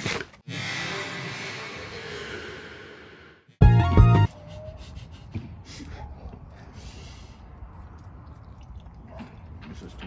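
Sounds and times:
people chewing food: 5.8 - 10.0.

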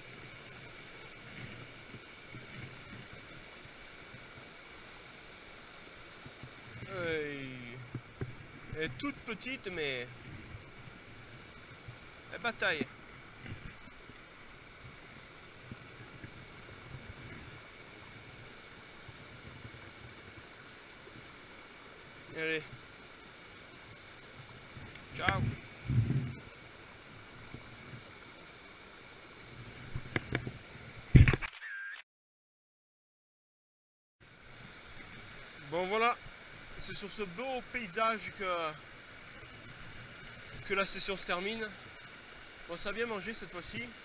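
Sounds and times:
stream rushing over rocks: 0.0 - 31.2, 34.2 - 44.0.

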